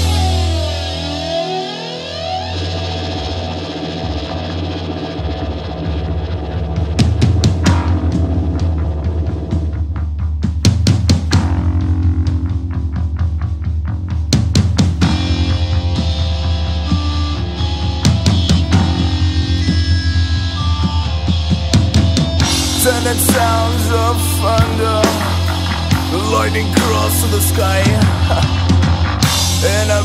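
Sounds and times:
drums: 0.0s - 30.0s
electric guitar with sweeping effect: 0.0s - 30.0s
steady bass: 0.0s - 30.0s.

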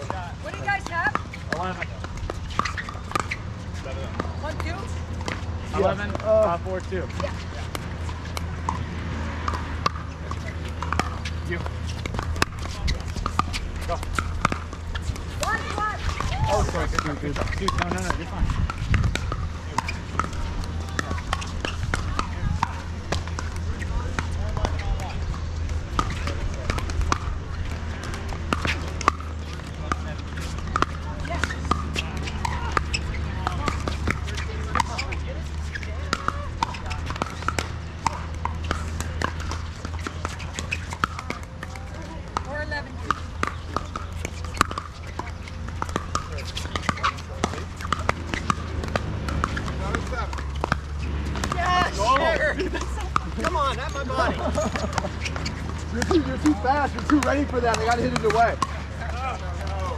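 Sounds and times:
paddles striking plastic balls: 0.0s - 59.9s.

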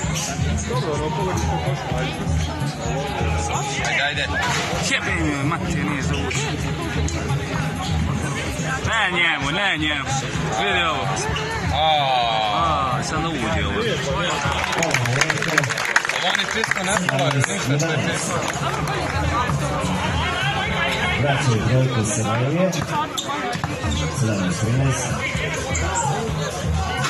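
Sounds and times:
babble of voices: 0.0s - 27.0s
people talking loudly: 0.0s - 27.0s.

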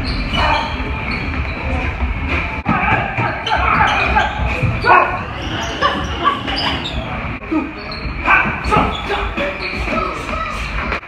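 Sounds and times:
people shouting: 2.6s - 6.9s, 7.5s - 9.2s.

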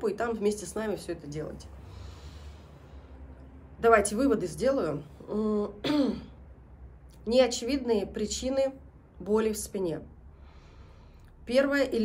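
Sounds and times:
woman clearing her throat: 5.8s - 6.4s.

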